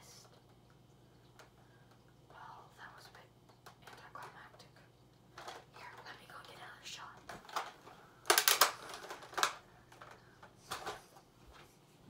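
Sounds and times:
soft whispering: 0:02.3 - 0:05.0, 0:05.6 - 0:07.4
sharp clicks and rustles: 0:07.2 - 0:11.7.

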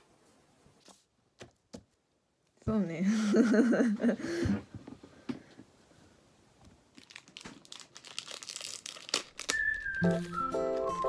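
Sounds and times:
plastic pouch crinkling: 0:06.9 - 0:11.0
music melody: 0:09.5 - 0:11.0.

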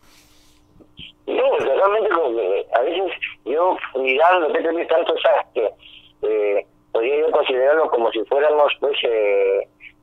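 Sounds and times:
person talking over telephone: 0:01.0 - 0:10.0.

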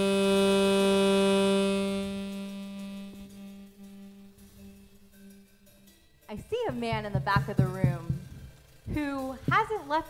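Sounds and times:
held musical note: 0:00.0 - 0:10.0.

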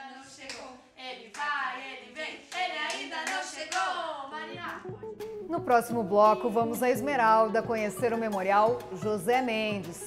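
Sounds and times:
children singing: 0:00.0 - 0:04.9
hand claps: 0:02.5 - 0:03.9.

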